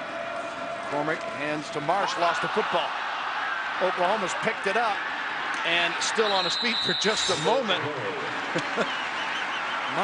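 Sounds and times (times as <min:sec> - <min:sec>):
stadium crowd noise: 0:00.0 - 0:10.0
referee's whistle trilling: 0:05.9 - 0:07.7.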